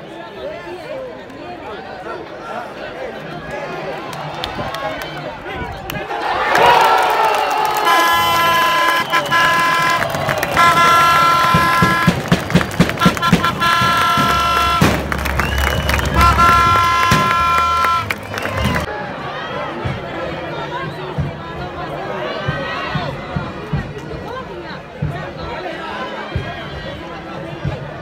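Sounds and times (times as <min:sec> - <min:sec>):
stadium crowd cheering: 0:00.0 - 0:28.0
air horn blasts: 0:07.8 - 0:18.9.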